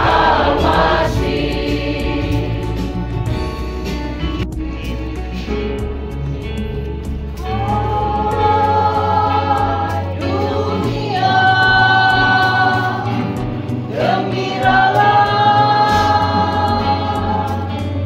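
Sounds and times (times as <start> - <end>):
women singing together: 0.0 - 3.0, 7.4 - 18.0
amplified instrumental backing: 0.0 - 18.0.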